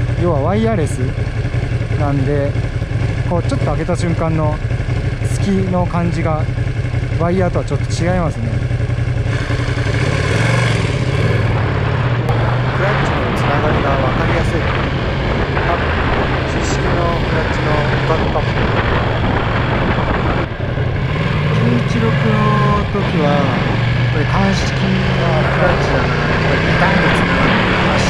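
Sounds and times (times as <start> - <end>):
motorcycle engine running: 0.0 - 28.0
wind noise on microphone: 12.2 - 21.5.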